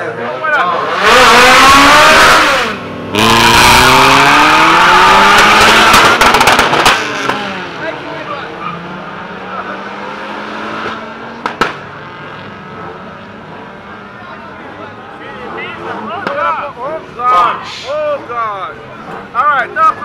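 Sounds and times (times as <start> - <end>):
race car engines revving: 0.0 - 20.0
sharp pop: 5.4 - 7.4, 10.8 - 11.8.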